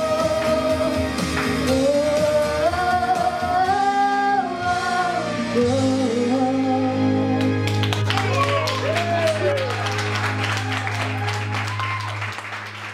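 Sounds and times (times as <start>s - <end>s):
girl singing a pop ballad: 0.0s - 7.7s.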